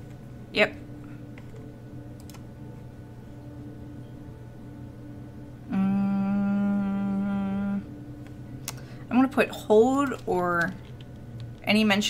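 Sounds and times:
woman humming a low note: 5.6 - 8.2.

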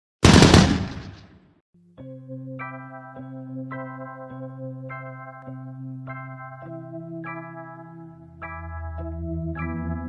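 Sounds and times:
loud burst of rattling: 0.2 - 1.3.

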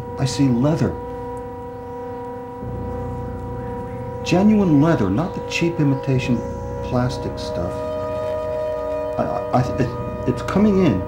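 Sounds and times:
electronic drone: 0.0 - 11.0
low hum: 0.0 - 11.0.

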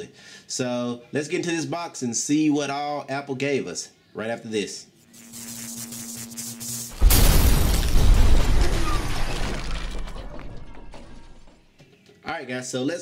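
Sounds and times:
glass breaking: 6.9 - 11.5
loud boom: 7.0 - 10.3.

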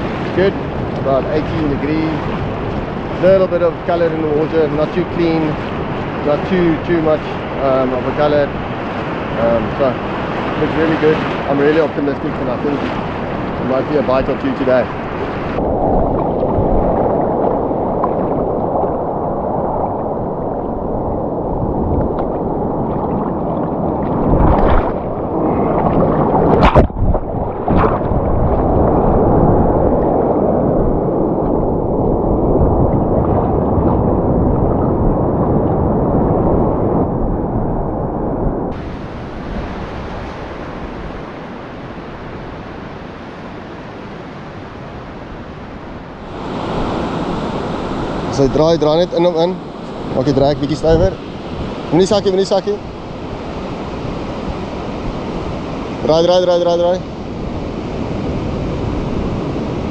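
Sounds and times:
surf churning around legs: 0.0 - 59.9
waves breaking on shore: 0.0 - 59.9.

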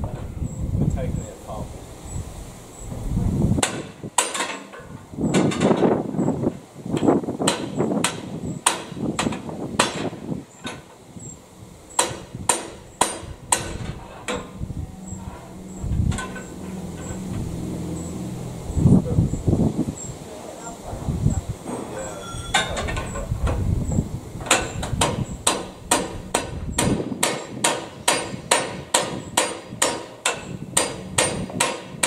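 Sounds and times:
hammer striking steel: 3.6 - 5.6, 7.5 - 10.1, 11.9 - 14.5, 24.5 - 32.0
steady low drone: 11.1 - 27.2.

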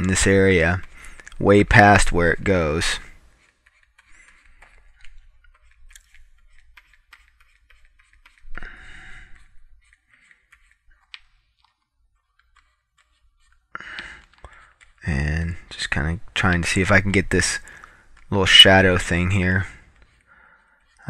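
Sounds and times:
stylus scratching on graphics tablet: 0.0 - 21.0.

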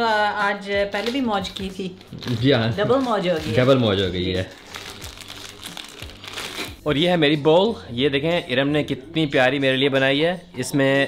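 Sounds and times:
woman speaking: 0.0 - 2.0
plastic wrapping crinkling: 0.9 - 6.8.

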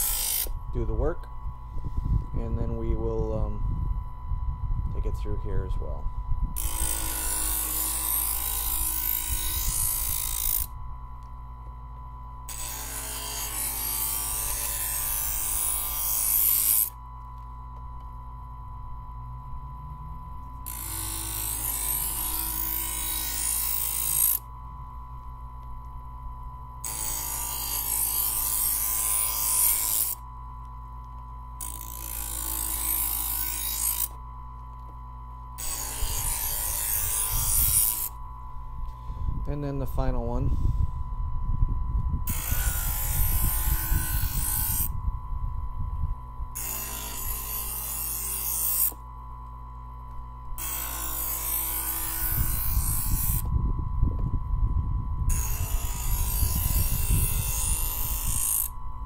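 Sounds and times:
knife grinding in sharpener: 0.0 - 0.6, 6.6 - 10.7, 12.5 - 17.0, 20.6 - 24.5, 26.8 - 30.2, 31.6 - 34.2, 35.6 - 38.2, 42.3 - 44.9, 46.6 - 49.0, 50.6 - 53.5, 55.3 - 58.8
knife sharpener motor hum: 0.0 - 3.5, 5.0 - 39.4, 42.2 - 45.0, 46.2 - 59.0.

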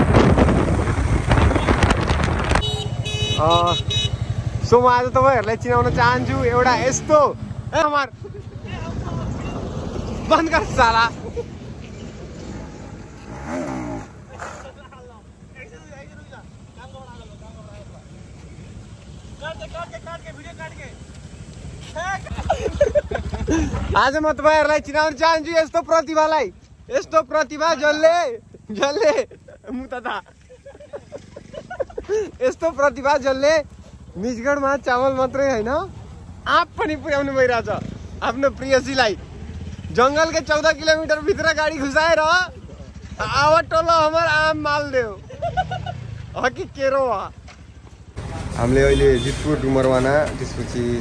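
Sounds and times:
vehicle engine rumble: 0.0 - 51.0.

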